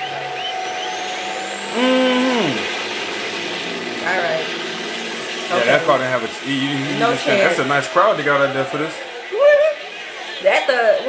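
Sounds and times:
faint high whistle: 0.0s - 2.7s
loud tone sliding down in pitch: 0.0s - 7.8s
truck engines running hard: 0.0s - 11.0s.

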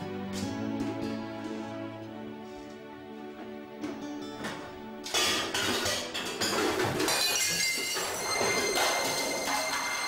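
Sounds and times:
plate shattering on floor: 5.1s - 10.0s.

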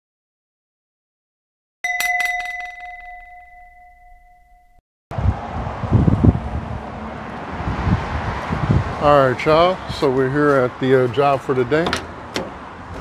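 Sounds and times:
bright electronic ding: 1.8s - 4.8s
outdoor background noise: 5.1s - 13.0s.

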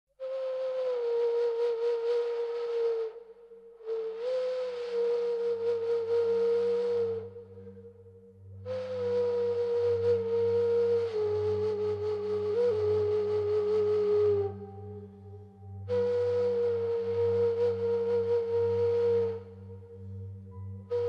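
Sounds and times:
breathy flute-like notes: 0.2s - 21.0s
low sustained drone: 5.3s - 21.0s.

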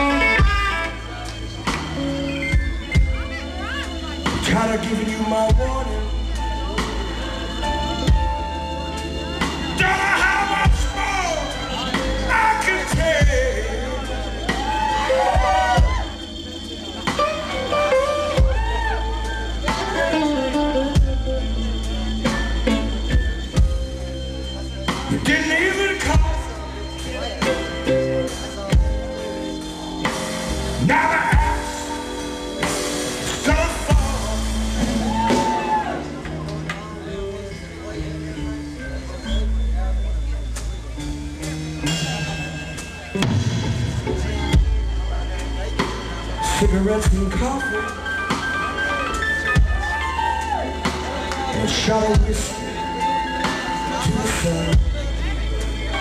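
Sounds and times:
electric blues guitar lead: 0.0s - 16.2s, 17.0s - 38.8s
band backing: 0.0s - 56.0s
bass line: 0.0s - 56.0s.

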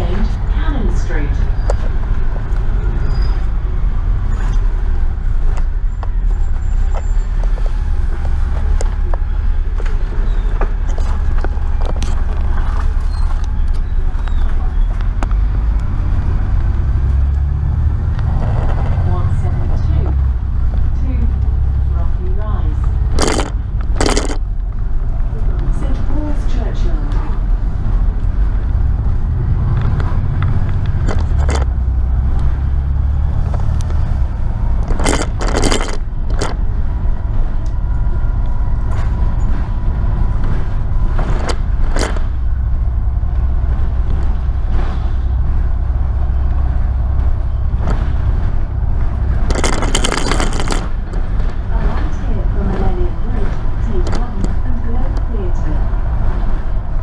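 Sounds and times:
bus diesel engine rumbling: 0.0s - 57.0s
bodywork rattling clacks: 23.0s - 24.6s, 30.4s - 31.8s, 33.4s - 36.6s, 40.4s - 42.5s, 47.8s - 55.3s.

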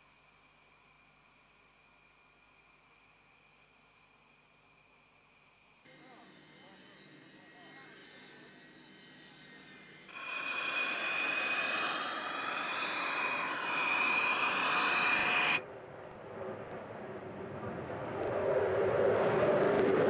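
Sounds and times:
distant whine: 5.9s - 20.0s
jet engine roaring: 10.1s - 20.0s.

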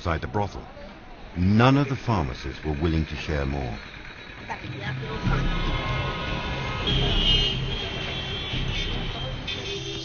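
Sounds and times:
city road traffic: 0.0s - 10.0s
background music: 4.2s - 10.0s.

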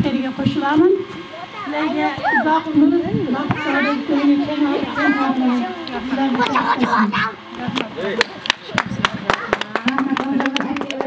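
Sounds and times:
children's high-pitched voices: 1.3s - 2.5s, 3.5s - 5.8s.

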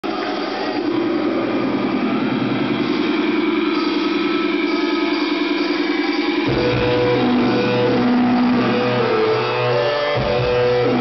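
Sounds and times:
buzzing amplified guitar drone: 0.1s - 11.0s.

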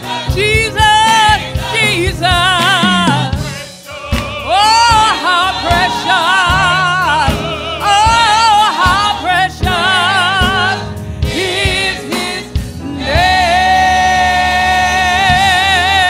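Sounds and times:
gospel choir singing: 0.0s - 16.0s
instrumental backing: 0.0s - 16.0s
lead singer with wide vibrato: 0.0s - 16.0s.

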